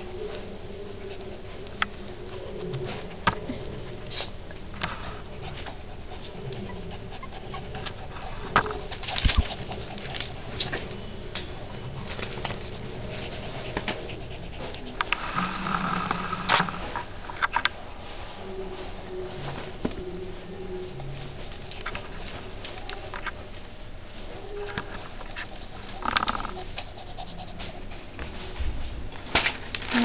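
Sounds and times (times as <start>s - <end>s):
puppy whimpering and grunting: 5.3s - 8.9s, 24.4s - 27.9s.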